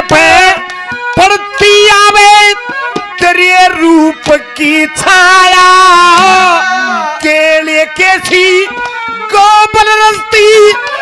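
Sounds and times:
man singing into microphone: 0.0 - 11.0.

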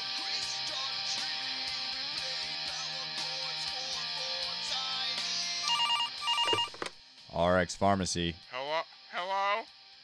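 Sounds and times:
guitar theme music: 0.0 - 7.1
desk telephone ringing: 5.7 - 6.9.

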